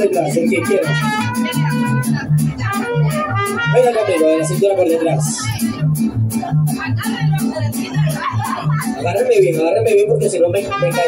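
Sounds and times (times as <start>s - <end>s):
plucked bass guitar line: 0.0s - 11.0s
strummed guitars: 0.0s - 11.0s.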